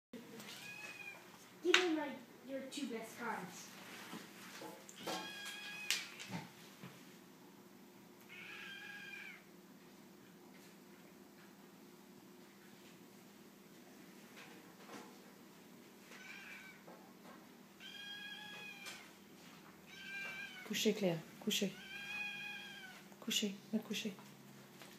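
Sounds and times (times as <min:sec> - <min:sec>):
kitten mewing: 0:08.2 - 0:09.4, 0:16.2 - 0:16.8, 0:21.7 - 0:23.0.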